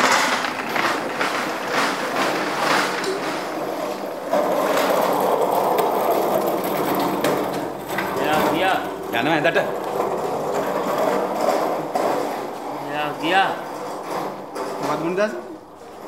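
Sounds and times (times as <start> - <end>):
irregular clattering: 0.0 - 15.3
metal trolley rattling: 0.0 - 16.0.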